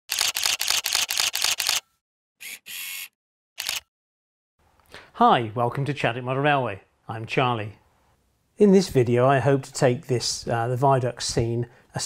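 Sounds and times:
camera shutter clicks: 0:00.1 - 0:01.8, 0:02.4 - 0:03.9.

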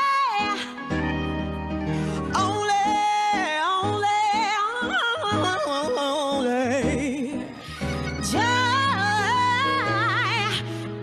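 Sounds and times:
gospel singer with vibrato: 0:00.0 - 0:11.0
instrumental accompaniment with bass: 0:00.6 - 0:04.2, 0:05.2 - 0:11.0.

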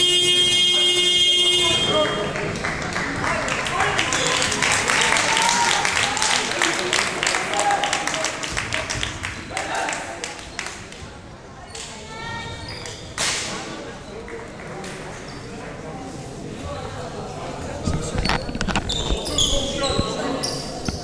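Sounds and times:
voices in gym hall: 0:00.0 - 0:21.0
hand-clapping: 0:02.0 - 0:11.0.

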